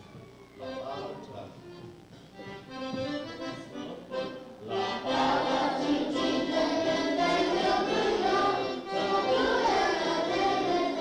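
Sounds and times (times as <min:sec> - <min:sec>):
accordion playing lively tune: 0:00.6 - 0:11.0.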